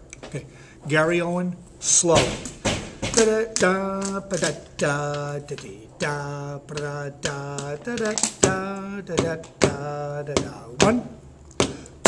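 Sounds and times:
man singing without words: 3.0 - 12.0.

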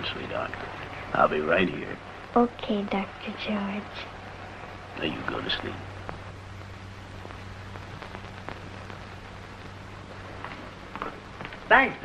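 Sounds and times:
crackles and pops: 0.0 - 12.0
film soundtrack hiss: 0.0 - 12.0
low hum: 0.0 - 12.0.

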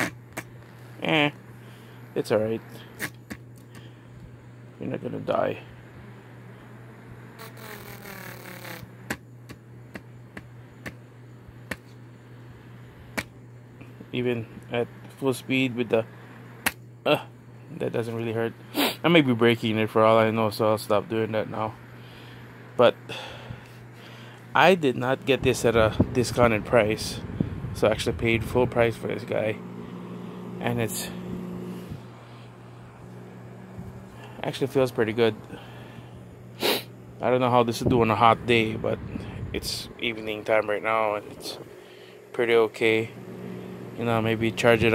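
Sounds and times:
desk fan motor humming: 0.0 - 44.9.

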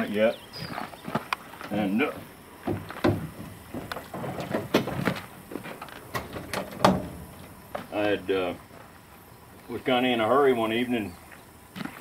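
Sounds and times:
truck hood creaking and clicking: 2.6 - 7.8
loud clunk of hood opening: 6.1 - 7.4.

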